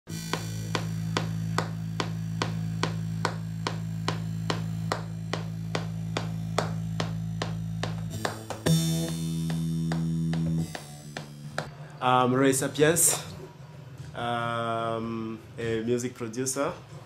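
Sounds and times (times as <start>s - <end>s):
click-like percussion hits: 0.1s - 11.7s
low synth drone: 0.1s - 12.0s.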